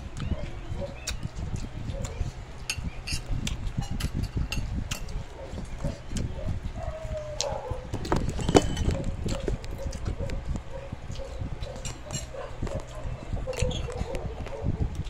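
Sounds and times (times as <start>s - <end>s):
children chewing and smacking: 0.0s - 15.0s.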